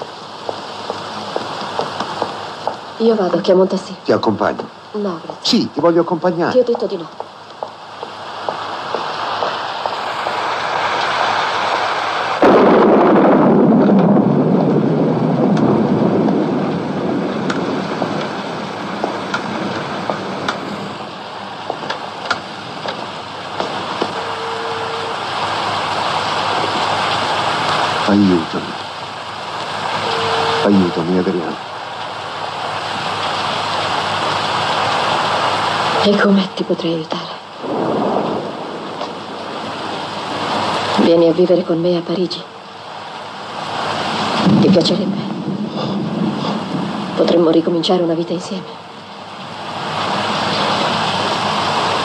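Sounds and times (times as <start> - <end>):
heavy rain: 0.0 - 52.0
thunder clap rumbling: 0.0 - 52.0
brief steady tones: 24.1 - 25.2, 30.0 - 30.7.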